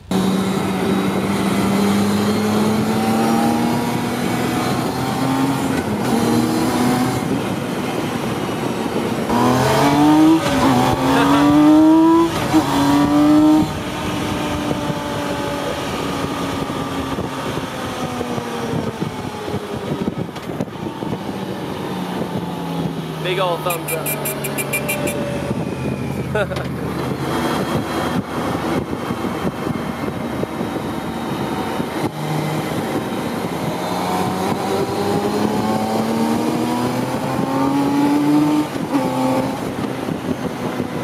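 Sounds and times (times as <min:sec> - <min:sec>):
car engine revving: 0:00.0 - 0:17.6, 0:18.2 - 0:41.0
road and wind noise: 0:00.0 - 0:41.0.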